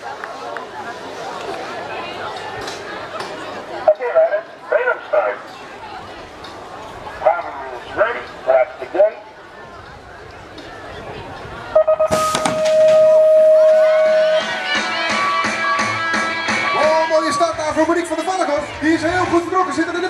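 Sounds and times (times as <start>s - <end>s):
people shouting and cheering: 10.7s - 20.0s
start beeps and long tone: 11.8s - 14.5s.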